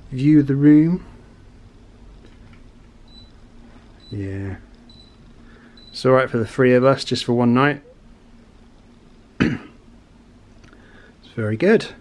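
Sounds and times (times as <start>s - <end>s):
faint steady hum: 0.0s - 12.0s
person coughing: 9.4s - 9.8s.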